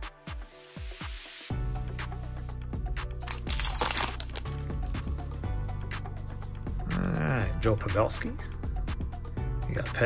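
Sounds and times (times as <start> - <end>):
background music with bass: 0.0 - 10.0
foil wrapper crinkling: 3.2 - 5.0.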